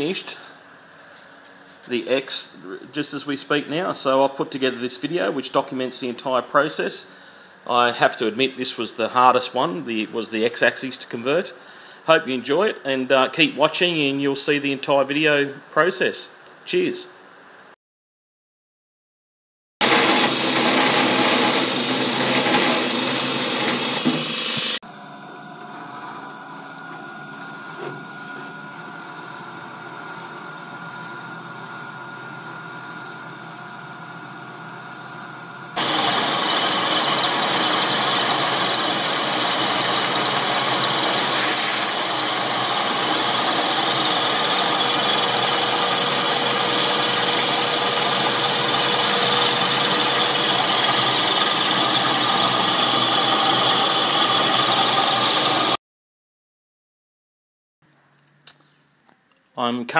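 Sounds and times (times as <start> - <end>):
end mill cutting metal: 35.8 - 55.8
loud squeals from cut: 41.3 - 42.0
steady motor hum: 42.0 - 55.6.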